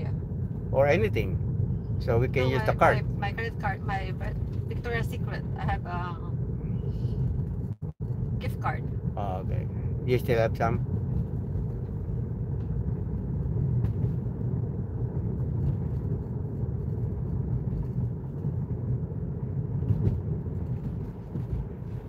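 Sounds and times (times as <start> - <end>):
tyre and road noise in car: 0.0 - 22.0.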